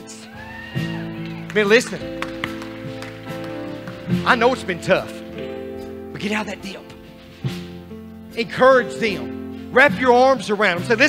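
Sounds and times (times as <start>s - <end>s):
praise band playing softly: 0.0s - 11.0s
sustained keyboard chords: 0.9s - 11.0s.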